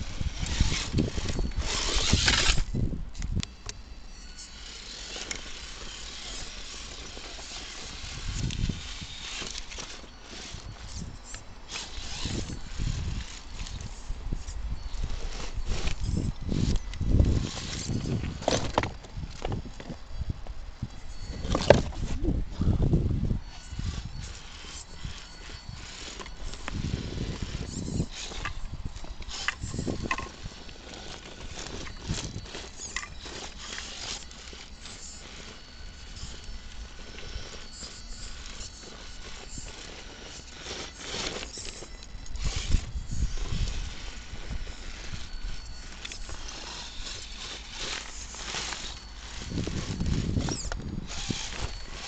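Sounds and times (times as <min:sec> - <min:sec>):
toy car motor whirring: 0:00.0 - 0:52.0.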